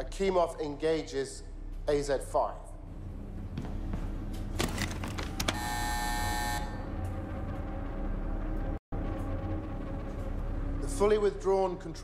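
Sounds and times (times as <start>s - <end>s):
control room hum: 0.0s - 12.0s
electric alarm buzzer: 5.4s - 7.0s.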